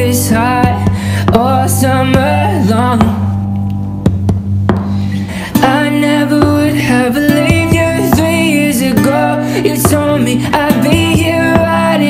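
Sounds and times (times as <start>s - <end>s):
acoustic guitar chord ringing: 0.0s - 12.0s
percussive strokes on guitar strings: 3.0s - 6.7s.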